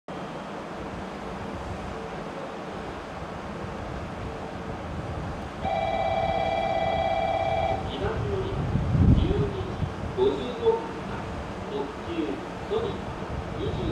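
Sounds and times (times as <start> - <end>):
station background rumble: 0.1 - 13.9
train horn blast: 5.6 - 7.9.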